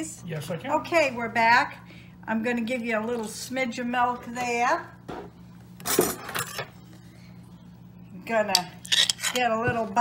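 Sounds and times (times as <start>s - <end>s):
kitchenware clinking: 5.8s - 6.7s.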